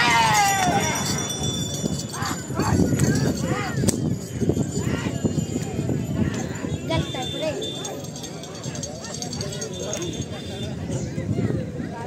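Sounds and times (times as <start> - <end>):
men shouting and whooping: 0.0 - 1.3, 2.1 - 3.9.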